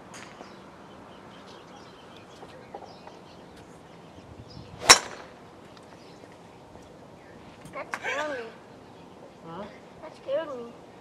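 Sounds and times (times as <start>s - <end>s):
golf club swing whoosh: 4.7s - 5.2s
golf ball struck crack: 4.8s - 5.4s.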